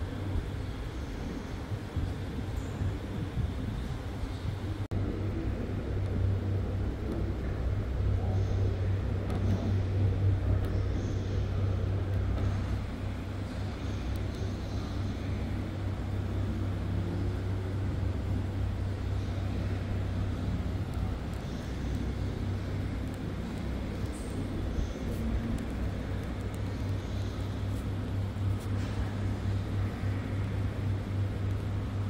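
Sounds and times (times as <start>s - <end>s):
constant rumbling: 0.0s - 32.0s
steady low hum: 0.0s - 32.0s.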